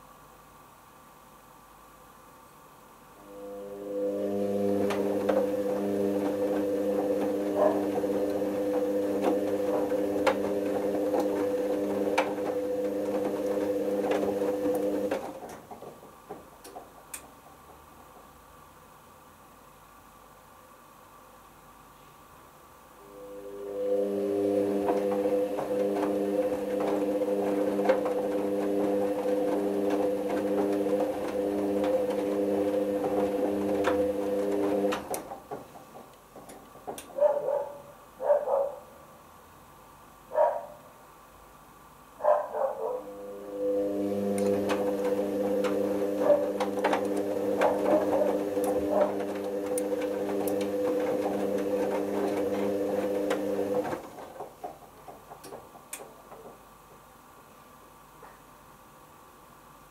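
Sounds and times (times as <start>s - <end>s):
washing machine drum motor humming: 3.1s - 18.8s, 23.0s - 38.8s, 42.3s - 57.6s.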